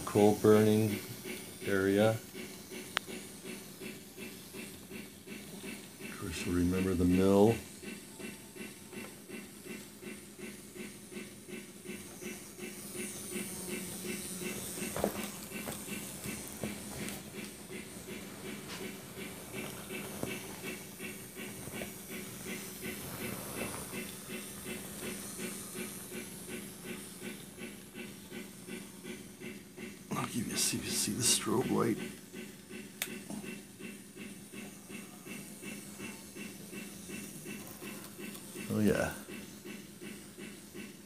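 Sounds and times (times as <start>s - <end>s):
steam locomotive chuffing: 0.0s - 41.0s
steady hum: 11.6s - 28.5s.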